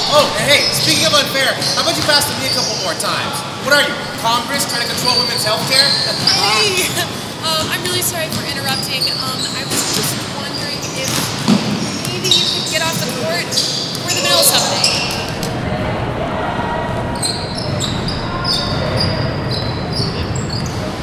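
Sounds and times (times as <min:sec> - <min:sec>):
voices: 0:00.0 - 0:21.0
basketball bouncing on hardwood floor: 0:11.0 - 0:13.2.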